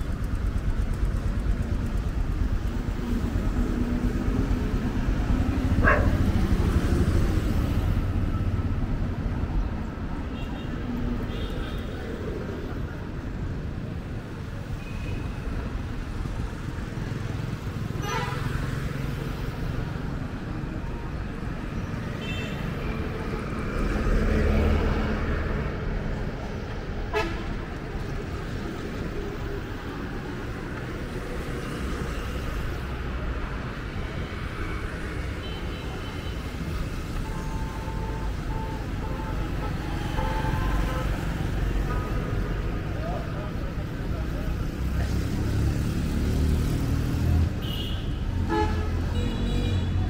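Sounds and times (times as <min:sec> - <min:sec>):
motorbikes passing: 0:00.0 - 0:10.2, 0:15.4 - 0:50.0
road traffic: 0:00.0 - 0:50.0.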